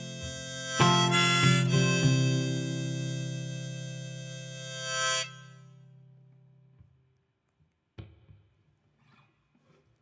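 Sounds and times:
guitar chord ringing: 0:00.0 - 0:06.4
harmonica note: 0:00.0 - 0:06.7.

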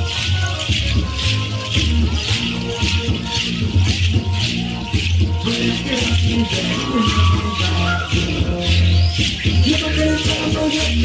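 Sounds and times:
rattles shaken in a beat: 0:00.0 - 0:11.0.

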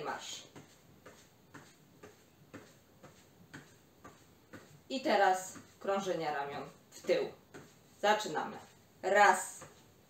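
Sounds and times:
soft footfalls on exercise mat: 0:00.0 - 0:10.0.

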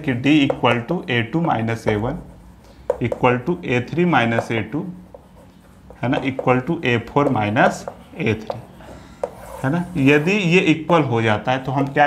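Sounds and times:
chalk scratching on chalkboard: 0:00.3 - 0:10.6.

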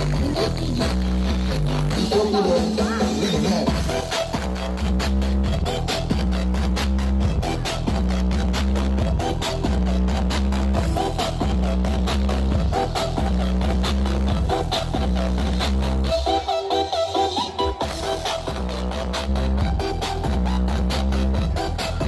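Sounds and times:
electronic dance music: 0:00.0 - 0:22.0.

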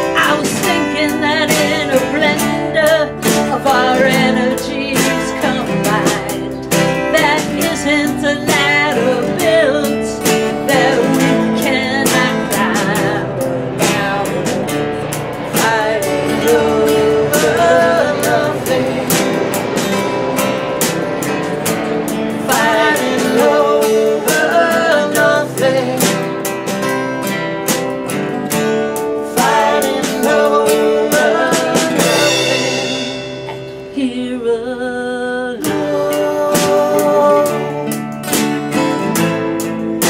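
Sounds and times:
woman singing: 0:00.0 - 0:19.8, 0:22.4 - 0:26.3, 0:29.2 - 0:38.0
drum kit and cymbals: 0:00.0 - 0:34.0
strummed acoustic guitars: 0:00.0 - 0:40.0.

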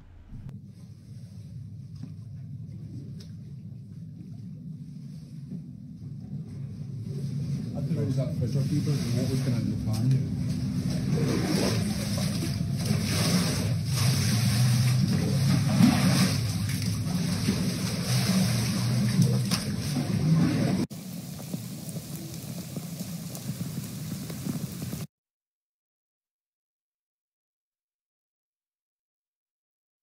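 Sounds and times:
quiet wash of noise: 0:00.0 - 0:00.5
floodwater rushing across floor: 0:08.6 - 0:25.1.

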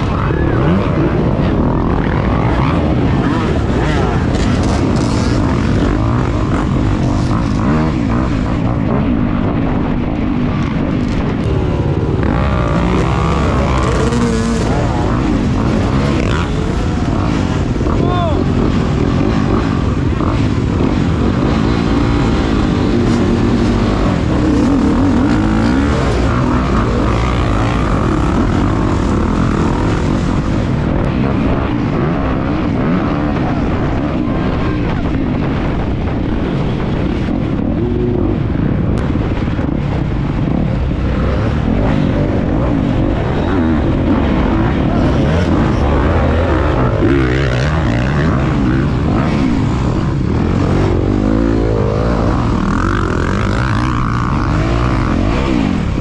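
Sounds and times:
dirt bike engines revving: 0:00.0 - 0:56.0.

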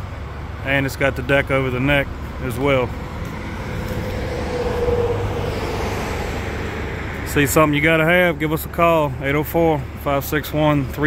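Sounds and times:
vehicle driving past: 0:02.5 - 0:08.6.

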